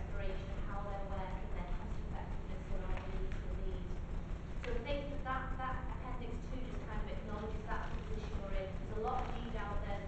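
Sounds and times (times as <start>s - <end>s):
steady low rumble: 0.0s - 10.0s
woman speaking: 0.0s - 10.0s.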